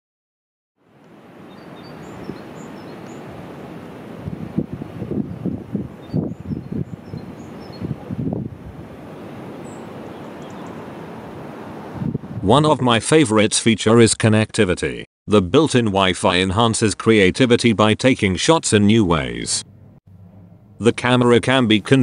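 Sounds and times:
wind buffeting microphone: 0:01.5 - 0:12.5.

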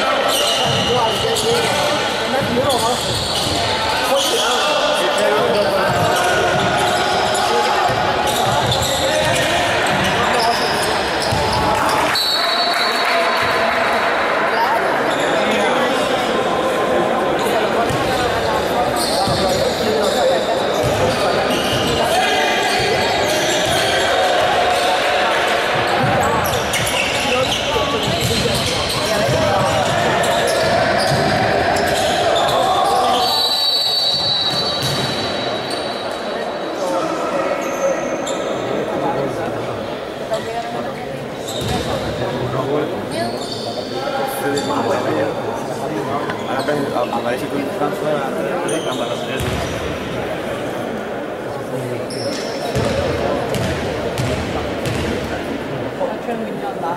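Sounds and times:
high whistle: 0:33.2 - 0:34.8
basketball bouncing on wooden floor: 0:52.8 - 0:55.1.

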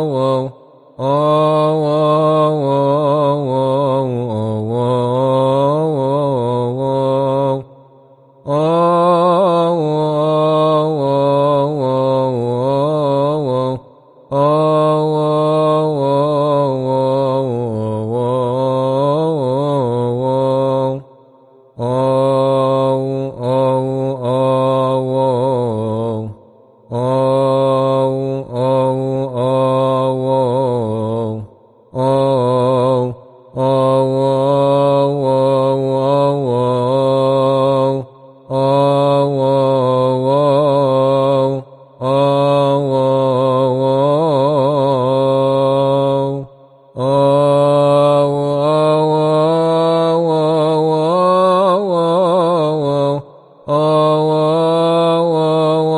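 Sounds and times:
man chanting: 0:00.0 - 0:55.9.

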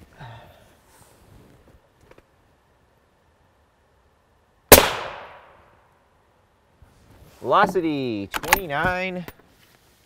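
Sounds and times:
suppressed rifle shot: 0:04.7 - 0:05.6.

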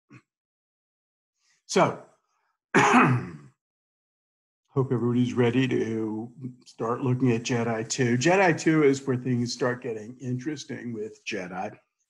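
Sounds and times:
man clearing his throat: 0:02.8 - 0:03.6.

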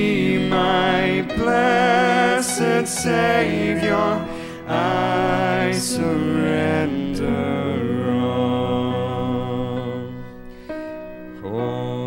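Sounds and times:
male trio singing chord: 0:00.0 - 0:12.0.

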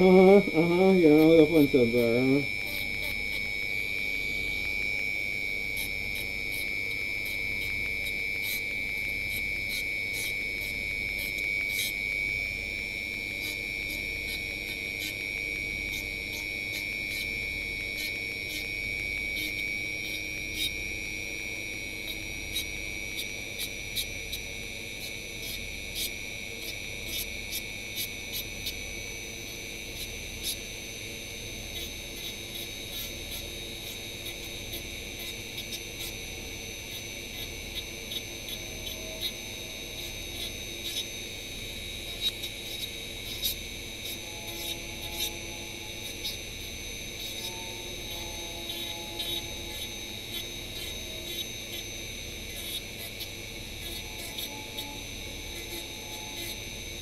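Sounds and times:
rotary tool high whine: 0:00.0 - 0:57.0.

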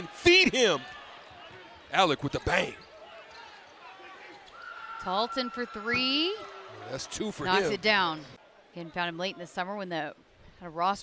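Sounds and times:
faint arena crowd noise: 0:00.0 - 0:11.0.

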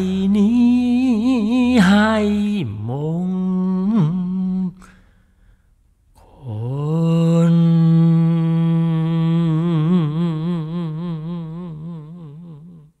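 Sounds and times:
man singing a long note: 0:00.0 - 0:04.8, 0:06.2 - 0:12.9.

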